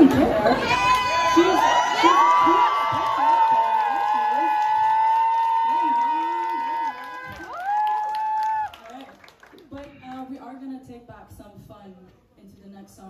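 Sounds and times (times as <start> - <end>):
audience cheering and screaming: 0.4 - 9.0.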